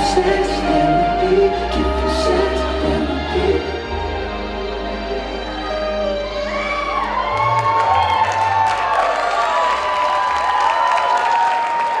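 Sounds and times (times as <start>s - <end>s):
dance music: 0.0s - 10.0s
audience cheering and whooping: 2.2s - 12.0s.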